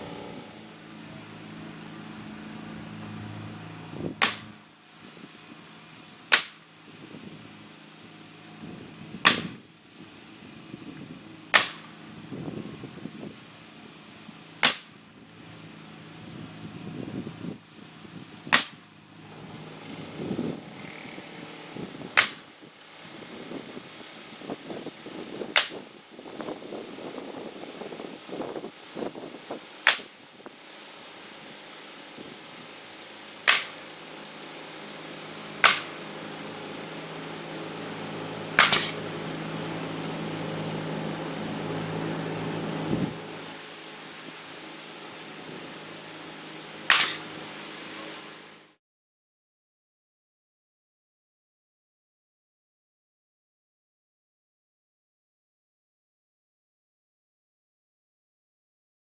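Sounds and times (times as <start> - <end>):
low motor hum: 0.0 - 48.8
pneumatic nail gun firing: 4.2 - 4.6, 6.3 - 6.7, 9.2 - 9.7, 11.5 - 12.0, 14.6 - 15.0, 18.5 - 22.5, 25.4 - 25.9, 29.8 - 30.2, 33.4 - 34.0, 35.6 - 36.1, 38.6 - 39.1, 46.9 - 47.4.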